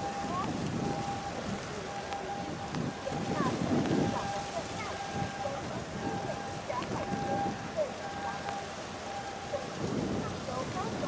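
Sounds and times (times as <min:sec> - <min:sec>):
rushing wind noise: 0:00.0 - 0:11.0.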